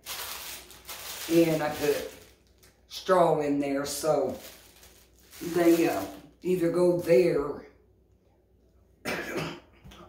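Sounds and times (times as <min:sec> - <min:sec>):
woman coughing: 0:09.0 - 0:09.8.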